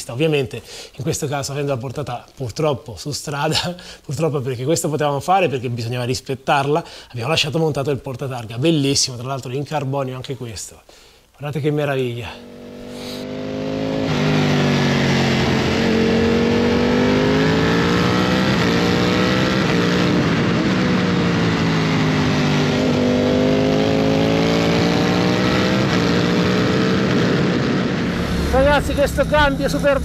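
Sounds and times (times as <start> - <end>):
motorcycle engine running: 28.0 - 30.0.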